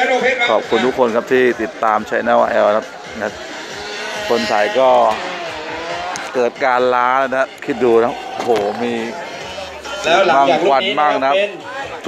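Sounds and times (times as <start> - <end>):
motorcycle engine running: 2.8 - 10.4
man speaking: 4.1 - 5.4, 6.2 - 9.2.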